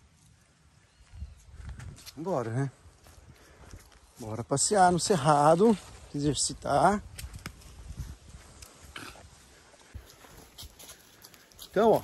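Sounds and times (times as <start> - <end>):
cub low grunt: 8.8 - 9.3.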